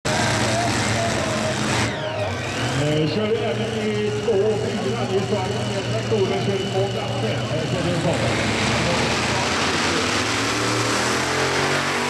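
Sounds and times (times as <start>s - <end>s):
tractor engines running loudly: 0.0s - 12.0s.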